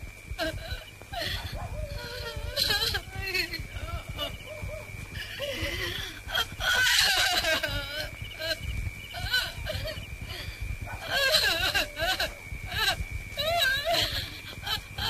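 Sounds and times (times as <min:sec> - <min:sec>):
steady high whine: 0:00.0 - 0:15.0
woman wailing and crying: 0:00.4 - 0:15.0.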